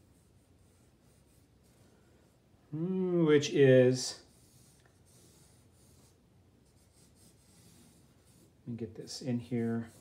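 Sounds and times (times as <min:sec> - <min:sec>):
pencil scratching on paper: 0:00.0 - 0:02.4, 0:03.9 - 0:10.0.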